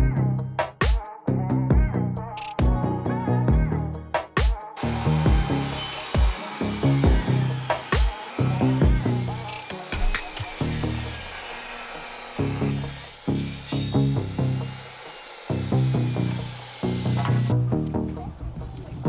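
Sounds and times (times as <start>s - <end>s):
background music with bass line: 0.0s - 11.4s, 12.4s - 14.9s, 15.5s - 19.0s
table saw cutting a board: 4.8s - 17.7s.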